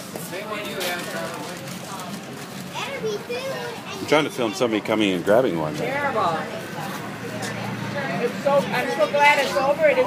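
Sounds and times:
background chatter of people: 0.0s - 10.0s.

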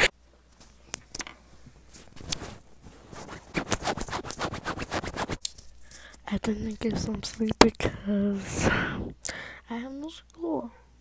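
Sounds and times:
fingers scratching earphone microphone: 2.2s - 5.4s.

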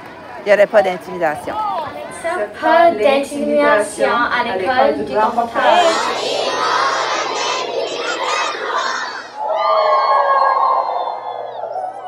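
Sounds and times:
crowd of children cheering: 5.6s - 12.0s.

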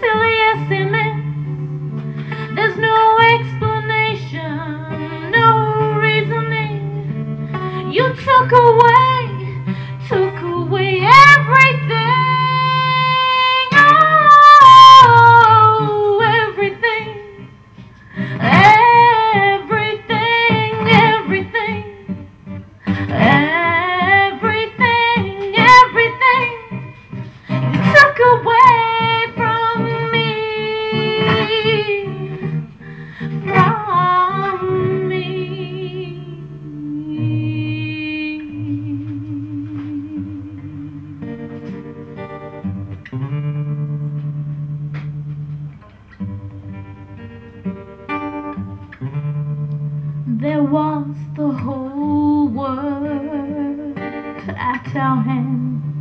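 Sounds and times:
woman singing wordless melody: 0.0s - 42.3s, 50.1s - 56.0s
fingerpicked acoustic guitar: 0.0s - 56.0s.

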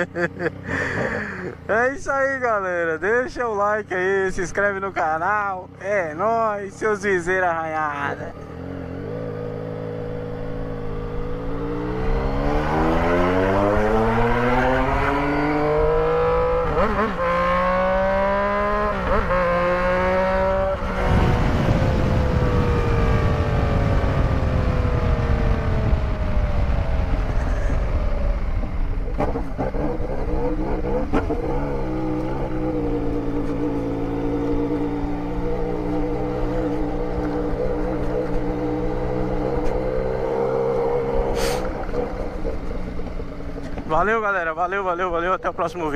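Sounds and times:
motorcycle engine accelerating: 0.0s - 45.9s
wind rushing over microphone: 19.8s - 44.0s.

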